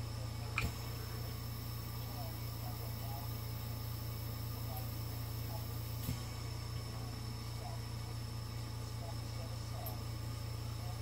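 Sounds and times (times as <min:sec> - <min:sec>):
steady low hum with hiss: 0:00.0 - 0:11.0.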